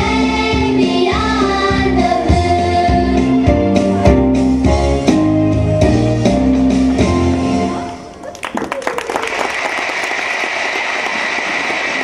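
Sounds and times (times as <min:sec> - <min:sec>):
audience applauding: 0:08.1 - 0:12.0.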